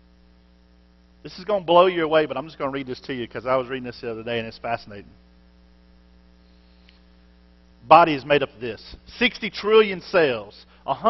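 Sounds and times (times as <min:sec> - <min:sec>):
faint electrical mains hum: 0:00.0 - 0:11.0
man speaking: 0:01.3 - 0:05.2, 0:07.8 - 0:11.0.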